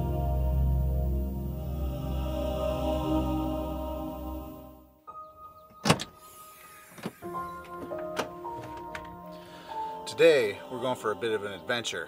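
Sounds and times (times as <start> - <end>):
car rear hatch latch clacking: 5.8 - 9.2.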